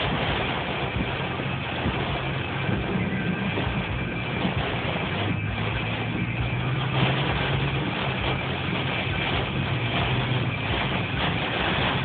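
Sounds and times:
low engine hum: 0.0 - 12.0
rain on car windshield and roof: 0.0 - 12.0.

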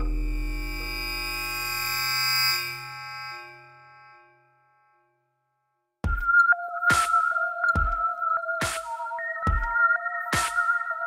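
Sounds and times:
sustained electronic chord: 0.0 - 4.1.

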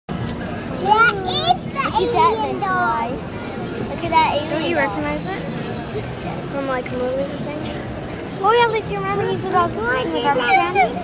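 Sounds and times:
young child speaking: 0.8 - 3.2, 8.4 - 11.0.

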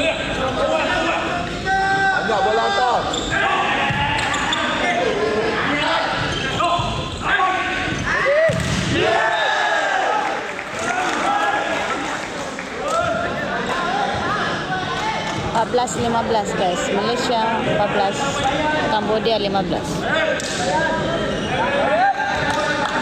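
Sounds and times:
players and spectators shouting: 0.0 - 15.6
volleyball struck hard: 8.4 - 9.2.

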